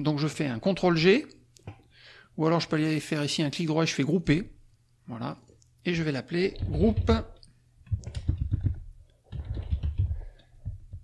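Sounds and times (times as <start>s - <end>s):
typing on computer keyboard: 6.5s - 11.0s.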